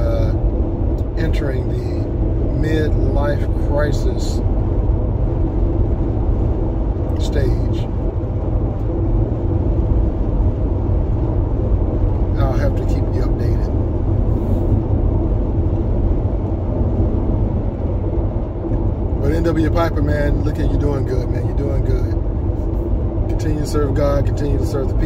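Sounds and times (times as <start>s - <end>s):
road and engine rumble in car: 0.0s - 25.0s.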